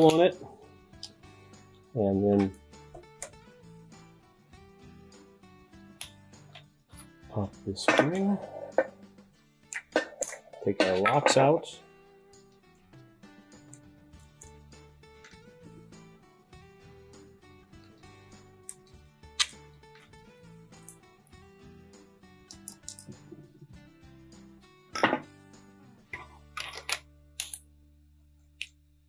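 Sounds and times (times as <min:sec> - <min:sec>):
quiet background music: 0:00.0 - 0:29.0
metallic clicks and clinks: 0:22.5 - 0:23.1.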